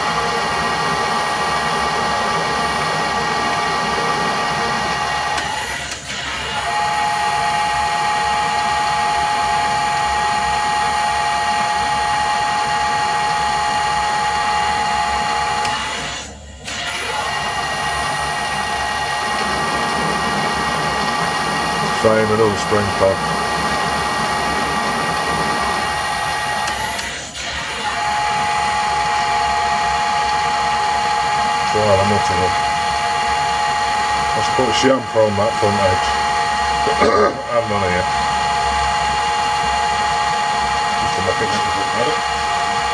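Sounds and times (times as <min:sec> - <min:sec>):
metal lathe gear whine: 0:00.0 - 0:42.9.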